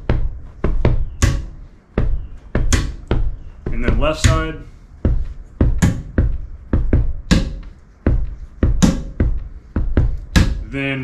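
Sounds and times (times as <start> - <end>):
foot stomping the floor: 0.0 - 10.7
hand striking metal chair: 0.0 - 10.7.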